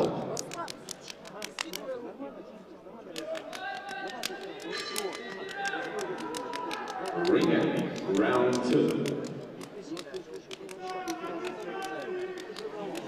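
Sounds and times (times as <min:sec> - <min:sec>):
men talking in large hall: 0:00.0 - 0:13.0
sharp clicks: 0:00.3 - 0:02.0, 0:03.1 - 0:13.0.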